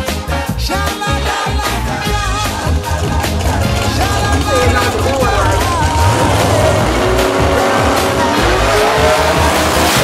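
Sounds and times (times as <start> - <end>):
background music: 0.0 - 10.0
drag racing car engine accelerating: 2.0 - 10.0.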